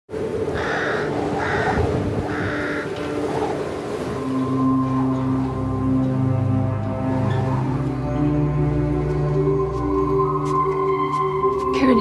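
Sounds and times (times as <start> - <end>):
crow cawing: 0.5 - 3.2.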